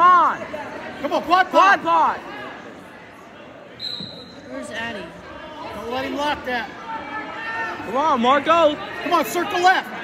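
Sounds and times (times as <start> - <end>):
murmur of crowd: 0.0 - 10.0
high-pitched whistle blast: 3.8 - 4.4.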